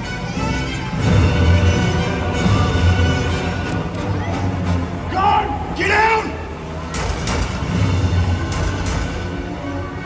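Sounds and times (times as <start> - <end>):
person shouting: 5.1 - 6.5.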